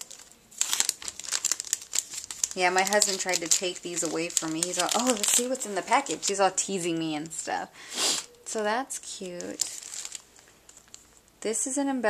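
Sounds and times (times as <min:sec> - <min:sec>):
plastic packaging crinkling: 0:00.0 - 0:07.5, 0:09.0 - 0:11.4.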